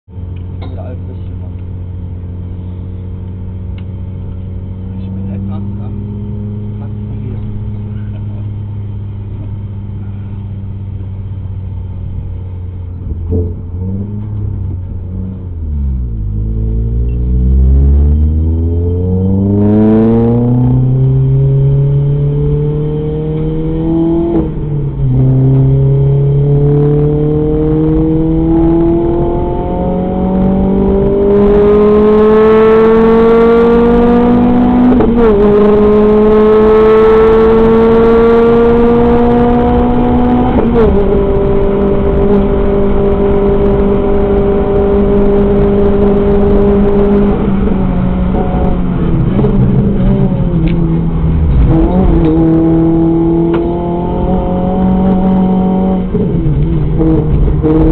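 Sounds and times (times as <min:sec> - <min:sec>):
car engine accelerating through gears: 0:00.2 - 0:57.9.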